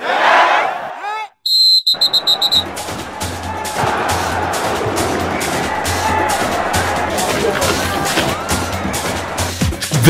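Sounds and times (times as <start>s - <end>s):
warbling whistle blast: 1.5s - 2.8s
music: 2.2s - 10.0s.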